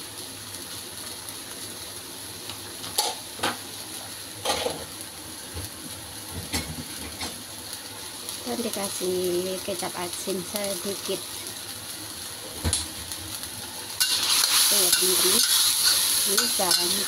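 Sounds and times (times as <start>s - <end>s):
meat sizzling in a wok: 0.0s - 17.0s
spatula stirring meat: 14.0s - 17.0s
spatula clinking against pan: 14.9s - 17.0s.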